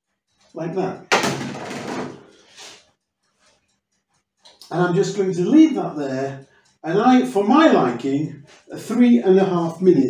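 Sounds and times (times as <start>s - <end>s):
sudden knock: 1.1s - 2.2s.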